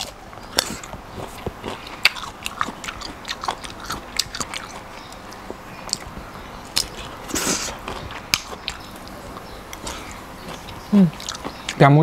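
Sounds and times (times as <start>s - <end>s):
person chewing crunchy food: 0.0s - 11.8s.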